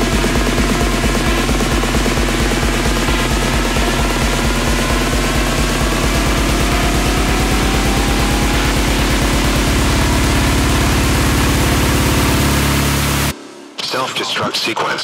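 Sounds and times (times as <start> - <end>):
rising white-noise sweep: 0.0 - 13.3
techno bass-drum roll: 0.0 - 14.4.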